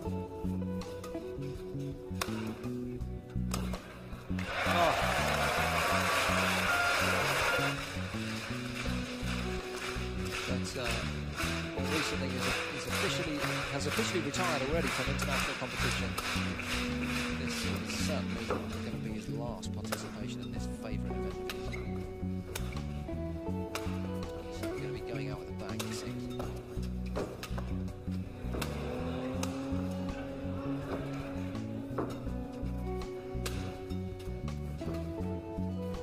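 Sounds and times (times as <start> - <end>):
music with steady beat and bass: 0.0 - 36.0.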